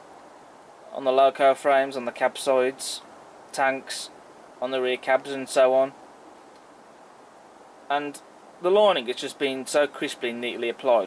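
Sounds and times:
faint background hiss: 0.0 - 11.0
man speaking: 0.9 - 6.0, 7.9 - 11.0.

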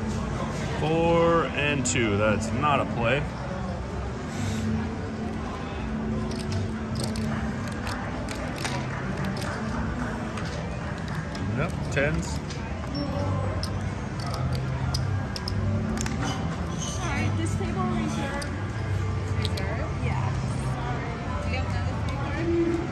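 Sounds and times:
background music: 0.0 - 22.9
playing cards and chips clicking: 6.2 - 16.8, 18.1 - 19.8.

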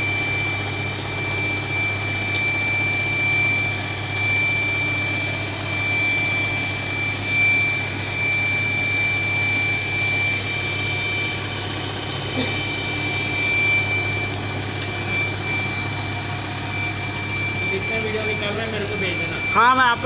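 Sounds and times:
high-pitched whine: 0.0 - 20.0
low hum: 0.0 - 20.0
blower rush: 9.4 - 20.0.

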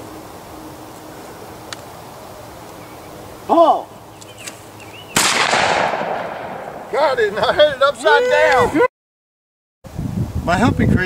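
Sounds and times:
shotgun blast: 5.2 - 7.0.

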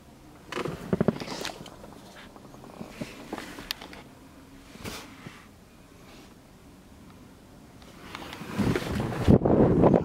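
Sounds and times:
car engine starting and rumbling: 0.0 - 10.0.

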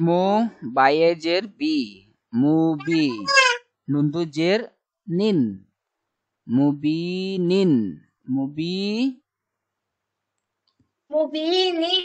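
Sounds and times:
person reciting syllable: 2.7 - 3.7.

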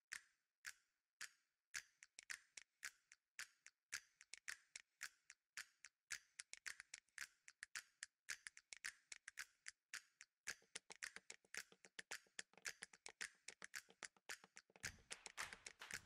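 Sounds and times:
rapid dry clicks and ticks: 0.1 - 16.0.

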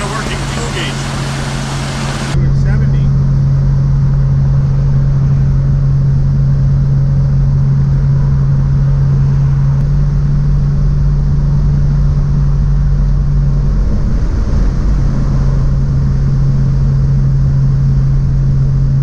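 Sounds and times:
road noise: 0.0 - 5.9
car engine hum in cabin: 0.0 - 19.0.

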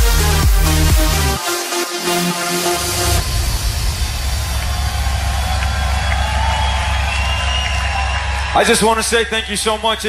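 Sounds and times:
deep bass tone: 2.7 - 7.4
crowd cheering and whooping: 4.2 - 10.0.

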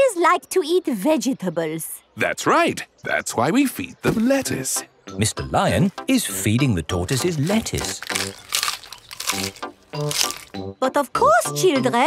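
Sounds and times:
background music notes: 3.8 - 12.0
crunchy cartoon munching bites: 7.1 - 10.6.

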